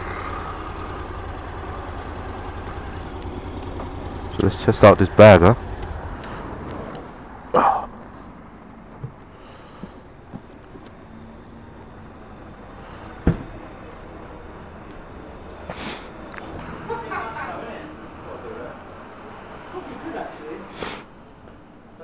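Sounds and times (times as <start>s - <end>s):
low street background: 0.0s - 22.0s.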